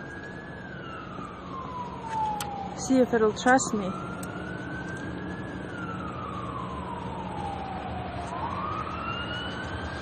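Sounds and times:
emergency siren wailing: 0.0 - 10.0.

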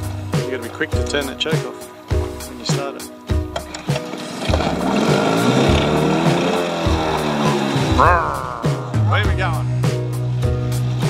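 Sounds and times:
upbeat background music: 0.0 - 11.0
outboard motor revving: 3.8 - 9.2.

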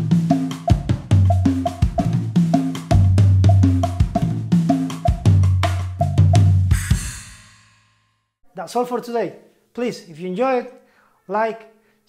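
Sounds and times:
acoustic drum kit playing: 0.0 - 7.8.

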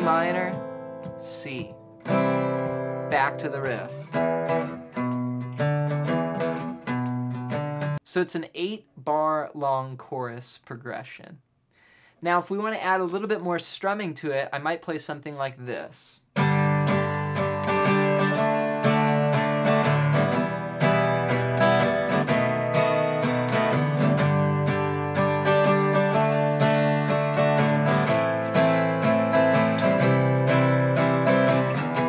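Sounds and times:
acoustic guitar strumming: 0.0 - 8.0, 16.4 - 32.0.

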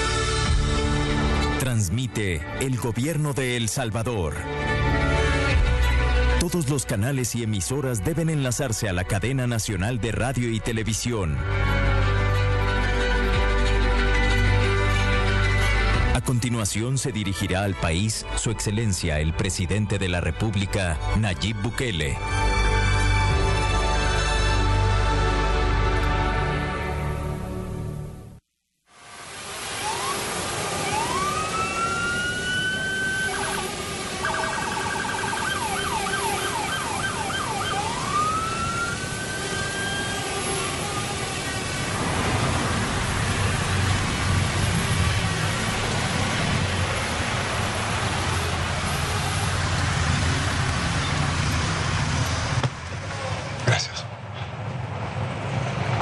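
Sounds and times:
siren wailing and yelping: 29.7 - 41.2.

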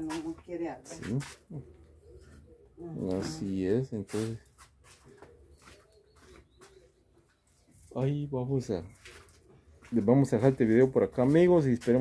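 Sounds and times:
bird cooing: 1.5 - 3.7, 4.9 - 7.4.

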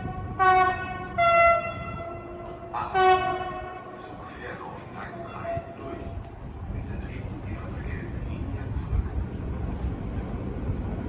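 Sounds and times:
train horn blasts: 0.0 - 4.0.

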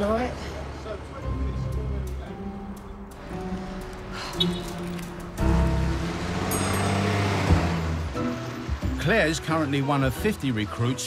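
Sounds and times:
vehicle engine: 0.0 - 9.8
music: 0.8 - 11.0.

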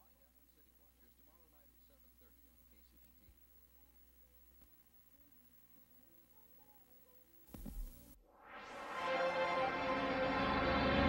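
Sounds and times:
faint videotape hiss: 0.0 - 10.2
noise burst with low thump: 7.5 - 8.2.

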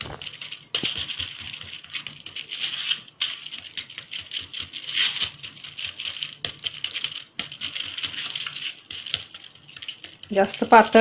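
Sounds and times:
fingers patting dough: 0.0 - 11.0
plastic sheet crackling: 0.0 - 11.0.

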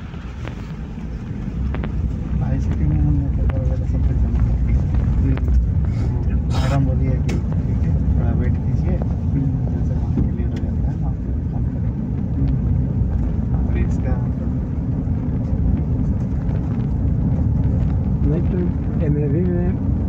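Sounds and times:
tyres on unpaved road: 0.0 - 20.0
vehicle engine droning: 0.0 - 20.0
faint voices: 2.3 - 14.6.

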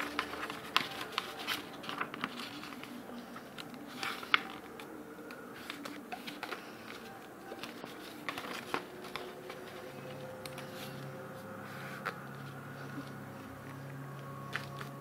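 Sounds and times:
paper being folded and creased: 0.0 - 15.0
paper rustling: 0.0 - 15.0.

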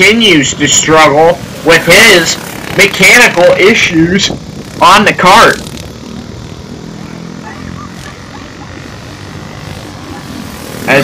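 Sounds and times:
distant go-kart engines buzzing: 0.0 - 11.0.

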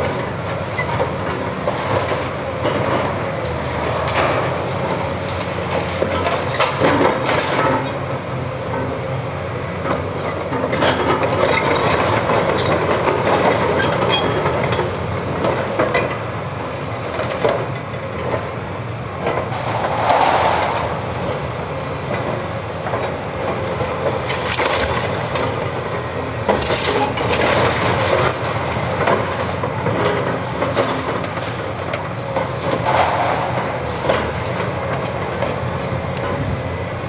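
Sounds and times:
excavator diesel engine under load: 0.0 - 37.0.

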